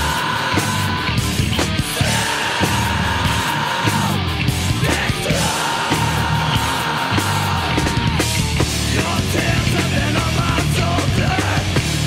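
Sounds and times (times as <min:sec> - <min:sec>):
metal band playing loud: 0:00.0 - 0:12.0.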